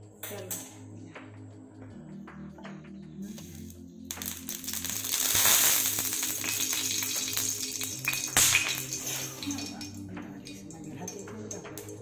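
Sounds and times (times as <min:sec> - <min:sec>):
background music low notes: 0:00.0 - 0:12.0
oil sizzling on hot pan: 0:04.1 - 0:09.6.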